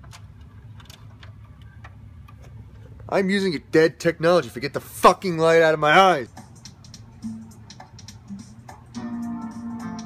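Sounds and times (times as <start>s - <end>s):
tape mechanism ticks and clicks: 0.0s - 2.6s, 6.3s - 8.3s
steady low hum: 0.0s - 10.0s.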